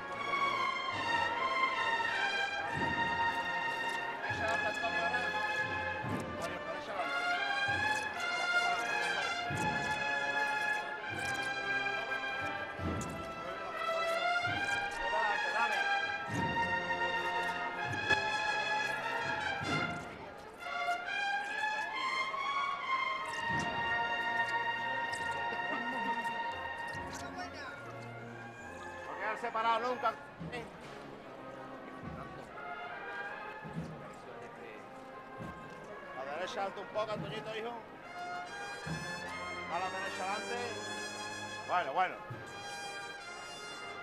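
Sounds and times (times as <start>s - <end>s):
brass band playing a march: 0.0s - 44.0s
low drum beats: 16.0s - 18.6s.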